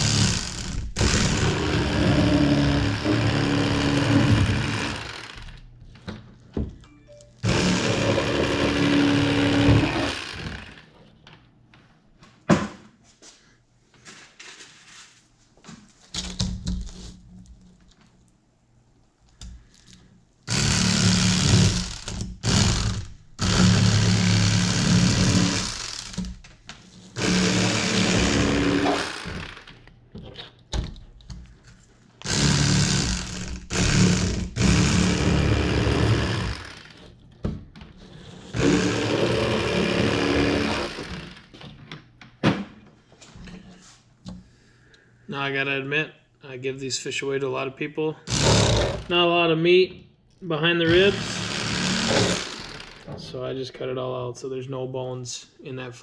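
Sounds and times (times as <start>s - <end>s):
electric fillet knife buzzing: 0.0s - 5.6s, 7.4s - 10.8s, 20.5s - 26.2s, 27.2s - 29.7s, 32.2s - 37.0s, 38.5s - 41.5s, 50.9s - 53.1s.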